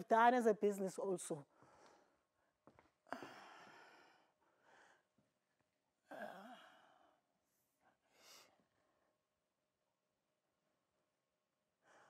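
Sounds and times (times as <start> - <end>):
person sighing: 6.1 - 6.9.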